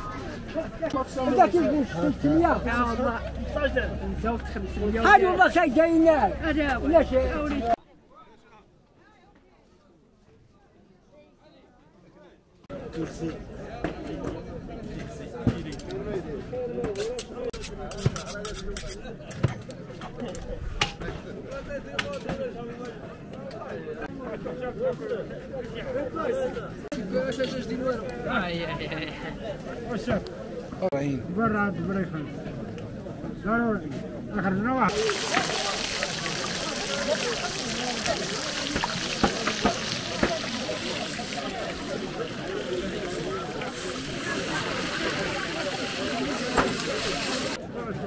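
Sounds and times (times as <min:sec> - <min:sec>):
knife scraping: 0:17.0 - 0:19.0
fish sizzling in hot oil: 0:34.9 - 0:47.6.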